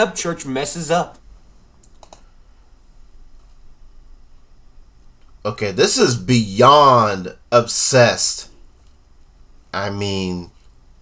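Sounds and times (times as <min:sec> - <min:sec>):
computer mouse clicks: 0:01.8 - 0:02.3.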